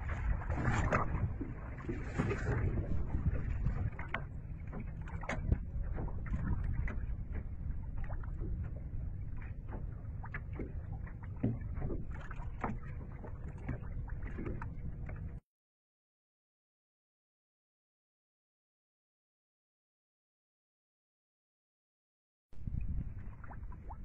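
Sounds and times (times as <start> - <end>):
waves lapping against boat hull: 0.0 - 15.4, 22.6 - 24.0
wind rumble on microphone: 0.0 - 15.4, 22.6 - 24.0.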